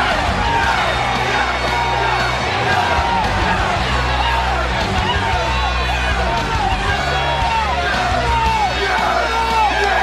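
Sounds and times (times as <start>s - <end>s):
arena crowd noise: 0.0s - 10.0s
loud entrance music: 0.0s - 10.0s
men shouting: 0.0s - 10.0s.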